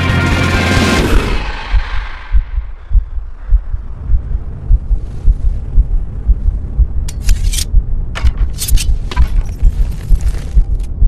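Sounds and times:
deep low thudding pulse: 1.3 - 8.3.

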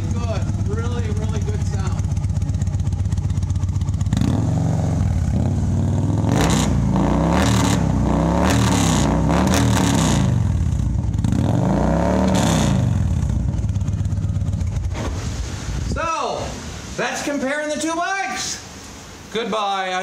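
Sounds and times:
motorcycle engine revving: 0.0 - 15.8.

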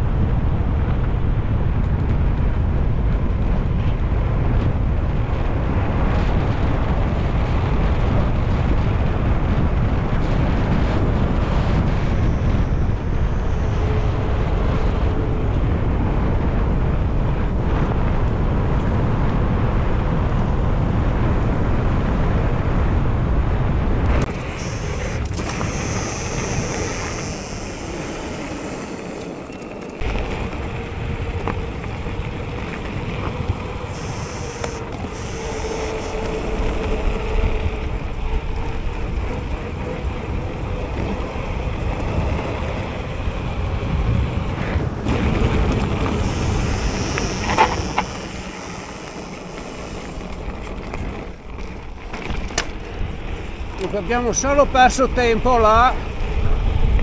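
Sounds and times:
bike tyre noise: 0.0 - 57.0
wind buffeting microphone: 0.0 - 57.0.

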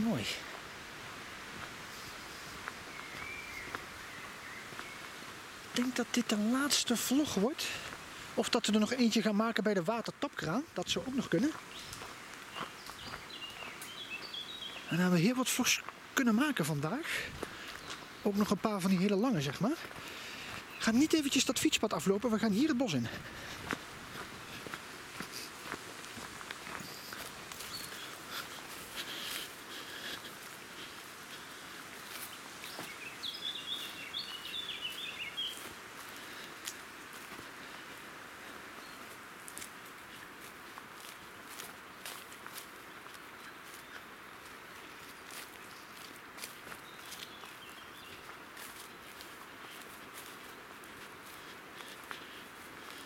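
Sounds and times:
footsteps on gravel and grass: 0.0 - 53.0
outdoor background noise: 0.0 - 53.0
bird calling: 2.0 - 5.1, 32.6 - 36.4.

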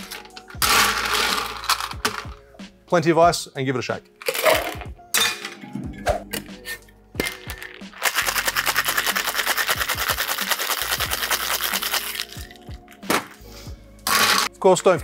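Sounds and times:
ice clinking on metal: 0.0 - 2.2
ice rattling in cocktail shaker: 0.0 - 2.3, 7.2 - 12.8.

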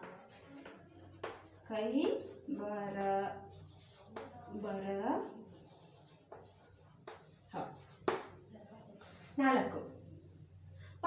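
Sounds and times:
chalk tap: 0.0 - 2.4, 3.5 - 4.7, 5.6 - 9.3
chalk scratching on chalkboard: 0.0 - 9.7
woman speaking: 8.6 - 10.0.

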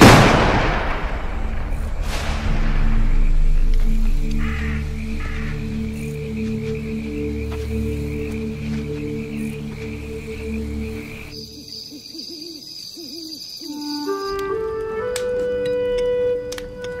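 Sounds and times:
owl hooting: 11.0 - 14.4.

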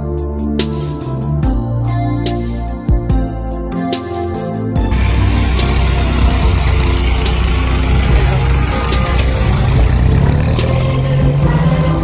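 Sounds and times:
vehicle engine driving past: 4.8 - 12.0.

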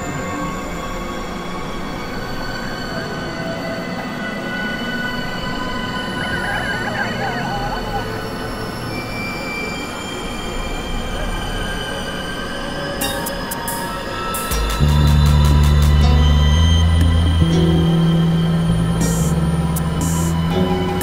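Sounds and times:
experimental electronic drones: 0.0 - 21.0
loud low bass drone: 14.4 - 21.0.

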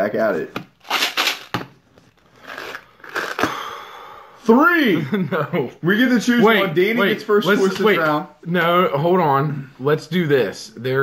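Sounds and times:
jelly beans rattling in canister: 0.8 - 1.6.

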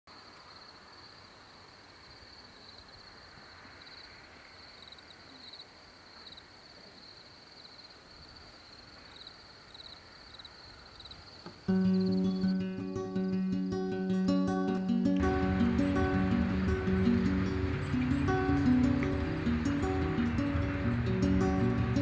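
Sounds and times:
low background hiss: 0.1 - 22.0
insects trilling: 0.2 - 14.2.

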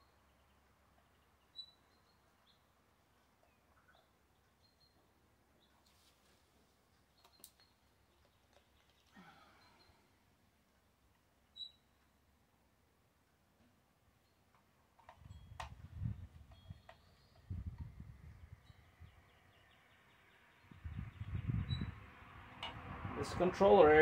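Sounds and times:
wind gusts on microphone: 15.2 - 19.4, 20.6 - 24.0.

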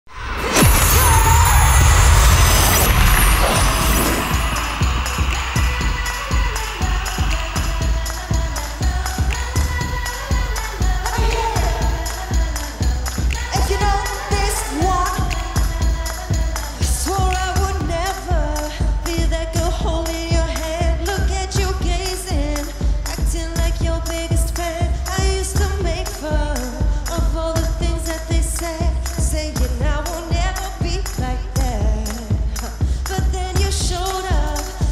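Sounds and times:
female lead vocal: 0.5 - 34.9
electronic dance beat: 0.6 - 26.7.

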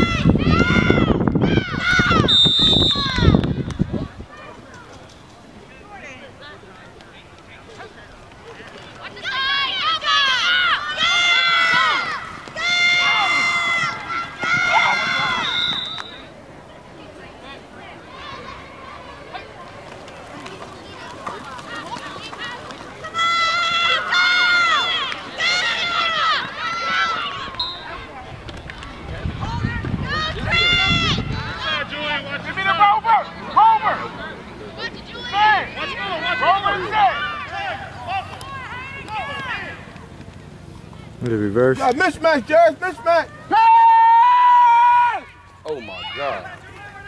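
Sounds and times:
children shouting: 0.0 - 2.3, 9.0 - 16.3, 17.9 - 19.8, 20.7 - 28.2, 28.8 - 39.9, 42.9 - 47.0
outdoor background noise: 0.0 - 47.0.

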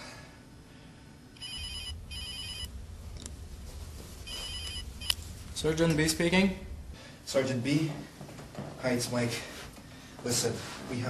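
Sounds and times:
low steady hum: 0.0 - 11.0
telephone ringing: 1.4 - 2.7, 4.3 - 5.1.

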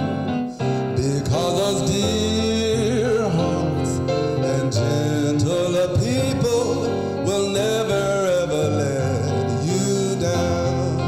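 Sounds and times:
instrumental accompaniment: 0.0 - 11.0
man singing: 0.6 - 11.0.

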